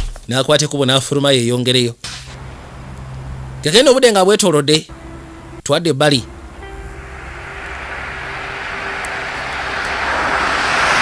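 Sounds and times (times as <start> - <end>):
car engine approaching: 2.4 - 3.9, 4.9 - 11.0
road noise: 2.4 - 3.9, 4.9 - 11.0.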